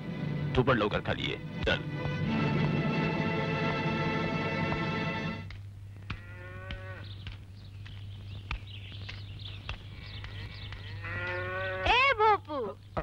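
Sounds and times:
cow mooing: 0:06.2 - 0:07.1, 0:10.9 - 0:12.0
faint bird twittering: 0:06.8 - 0:11.8.

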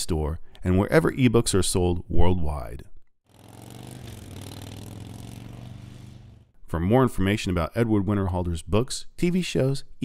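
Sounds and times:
motorcycle engine idling: 0:03.3 - 0:06.5.

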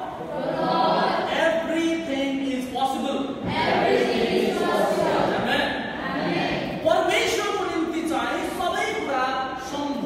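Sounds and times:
congregation chant-like singing: 0:00.0 - 0:01.4, 0:03.4 - 0:06.8.

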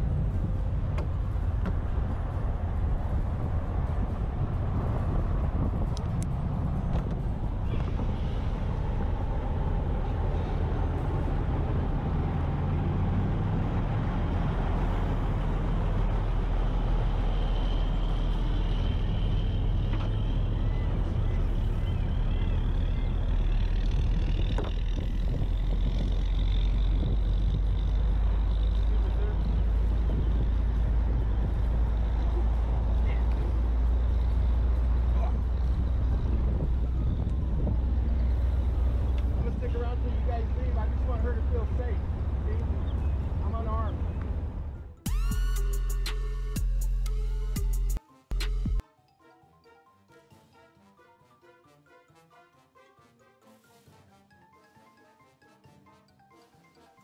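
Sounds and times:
car engine idling: 0:00.0 - 0:13.0, 0:14.2 - 0:48.0.

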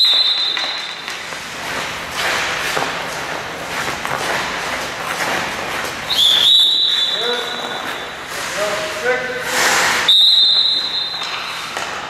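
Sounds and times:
shrill whistle blown: 0:00.0 - 0:00.9, 0:06.1 - 0:07.8, 0:10.1 - 0:11.3
skates scraping on ice: 0:00.0 - 0:12.0.

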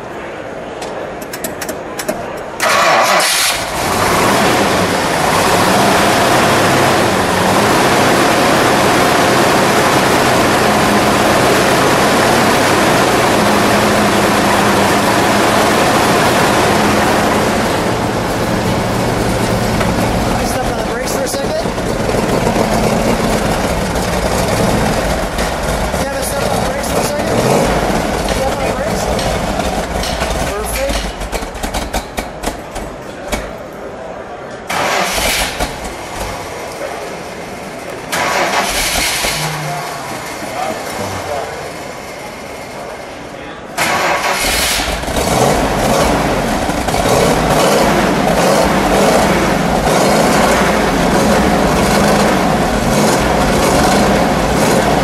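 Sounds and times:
car engine starting and idling: 0:01.6 - 0:33.9, 0:34.6 - 0:55.0.

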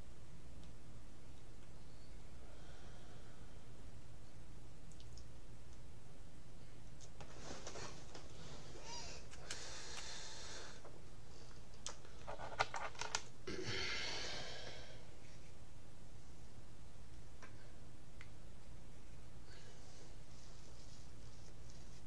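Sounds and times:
steady low hum: 0:00.0 - 0:22.0
breathy exhale: 0:02.4 - 0:03.7, 0:08.4 - 0:10.8, 0:13.6 - 0:15.1.

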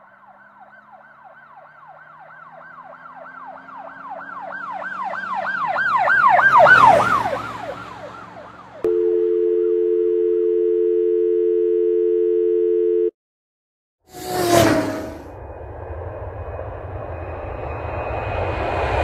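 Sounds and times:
telephone dial tone: 0:08.8 - 0:13.2.

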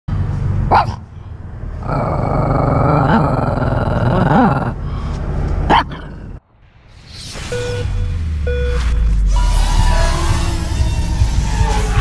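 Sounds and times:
dog barking: 0:00.7 - 0:01.0, 0:05.7 - 0:06.1
small dog growling: 0:01.8 - 0:04.8.

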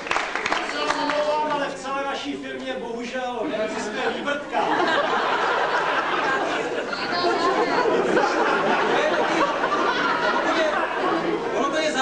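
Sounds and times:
overlapping chatter in hall: 0:00.0 - 0:12.0.

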